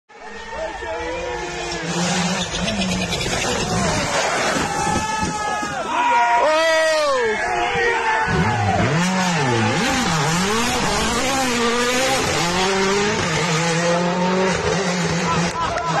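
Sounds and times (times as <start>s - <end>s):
rally car engine revving: 1.1s - 5.2s, 8.2s - 16.0s.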